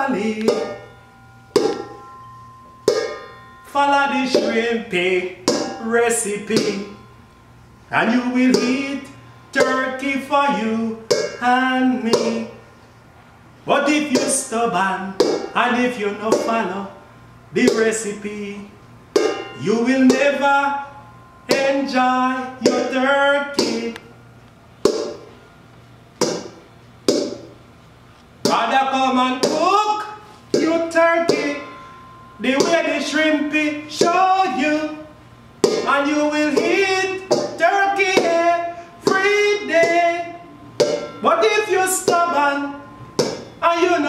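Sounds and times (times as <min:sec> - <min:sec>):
hand slaps on metal bowl: 0:26.2 - 0:27.5.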